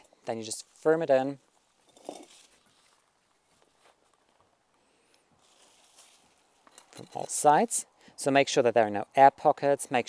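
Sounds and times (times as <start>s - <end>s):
rustling of compost: 0.0s - 9.5s.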